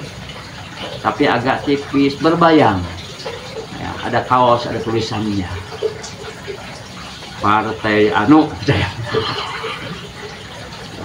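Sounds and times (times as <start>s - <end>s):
people laughing: 8.6s - 10.0s.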